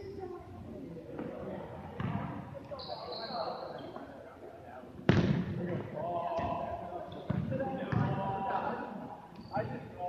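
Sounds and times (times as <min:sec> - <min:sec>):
players calling and shouting: 0:04.9 - 0:10.0
dodgeballs smacking: 0:05.1 - 0:05.8.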